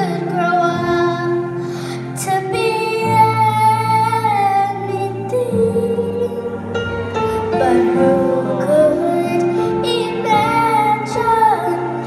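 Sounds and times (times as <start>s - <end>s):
girl singing into a microphone: 0.0s - 6.7s, 7.3s - 12.0s
instrumental accompaniment: 0.0s - 12.0s.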